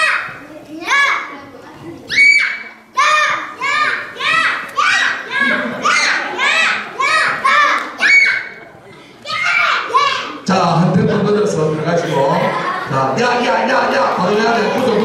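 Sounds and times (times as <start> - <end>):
children chanting: 3.0 - 8.1.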